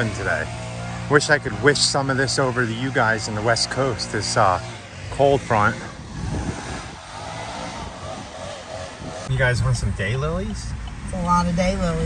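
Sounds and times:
vehicle road and engine noise: 0:00.0 - 0:12.0.

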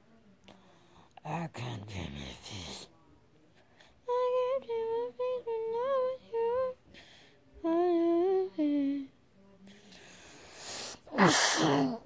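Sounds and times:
girl humming: 0:07.6 - 0:09.1.

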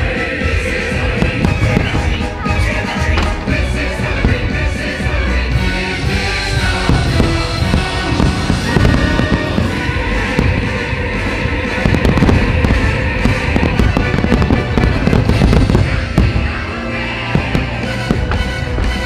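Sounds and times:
orchestral show music: 0:00.0 - 0:19.0
fireworks bursting and crackling: 0:00.1 - 0:19.0.

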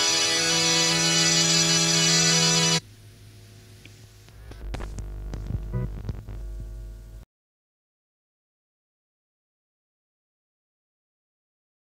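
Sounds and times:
steady low hum: 0:00.0 - 0:07.2.

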